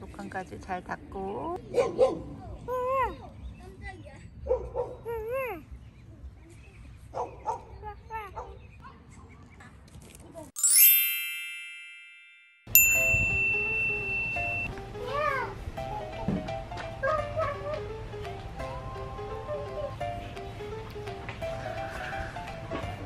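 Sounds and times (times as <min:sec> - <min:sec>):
bright chime sound effect: 0:10.6 - 0:14.7
ding with held high tone: 0:10.6 - 0:14.7
music: 0:12.7 - 0:23.0.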